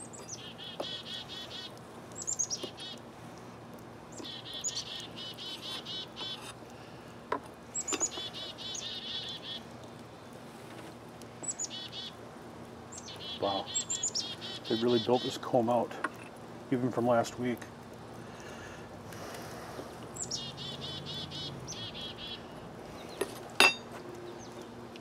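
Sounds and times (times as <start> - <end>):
songbird singing trills: 0.0 - 3.0, 4.1 - 6.5, 7.7 - 9.6, 11.4 - 12.2, 12.9 - 15.5, 20.1 - 23.3.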